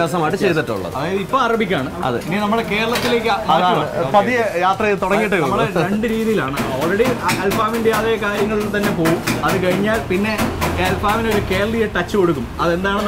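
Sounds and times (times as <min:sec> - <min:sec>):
men talking over one another: 0:00.0 - 0:09.1.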